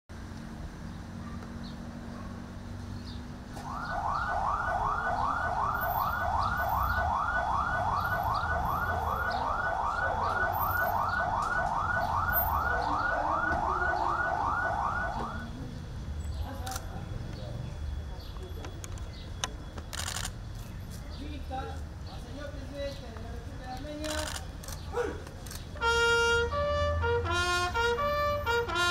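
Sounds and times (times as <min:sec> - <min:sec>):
siren yelping: 0:03.6 - 0:15.5.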